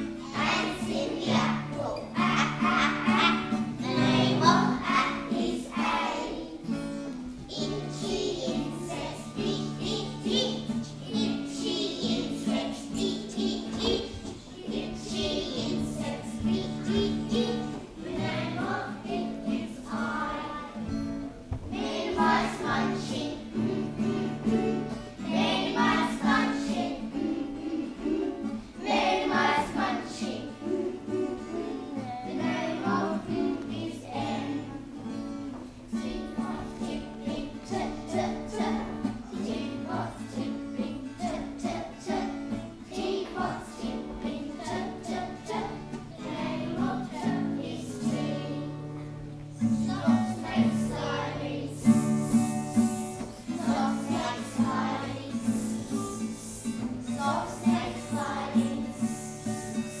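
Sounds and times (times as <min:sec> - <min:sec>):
acoustic guitar: 0:00.0 - 1:00.0
children singing together: 0:00.0 - 1:00.0.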